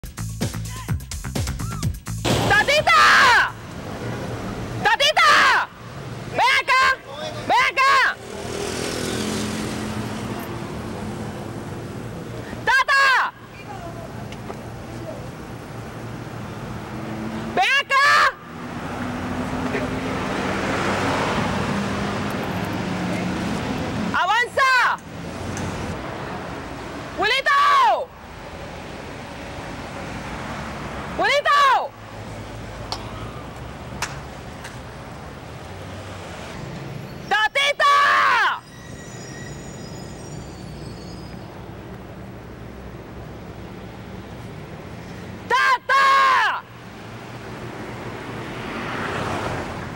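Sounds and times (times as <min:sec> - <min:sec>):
street traffic: 0:00.0 - 0:49.9
woman shouting: 0:00.7 - 0:01.0, 0:02.5 - 0:03.6, 0:04.8 - 0:08.2, 0:12.6 - 0:14.1, 0:17.6 - 0:18.4, 0:24.1 - 0:25.0, 0:27.2 - 0:28.2, 0:31.2 - 0:32.0, 0:37.3 - 0:38.6, 0:45.5 - 0:46.7
woman screaming: 0:02.6 - 0:03.6, 0:04.9 - 0:05.7, 0:12.6 - 0:13.9, 0:17.6 - 0:18.4, 0:27.2 - 0:28.1, 0:37.3 - 0:38.7, 0:45.5 - 0:46.7.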